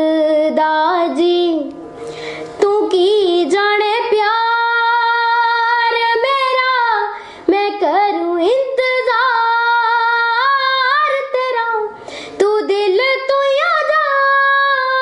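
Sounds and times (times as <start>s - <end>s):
girl singing unaccompanied: 0.0s - 1.8s, 2.6s - 15.0s.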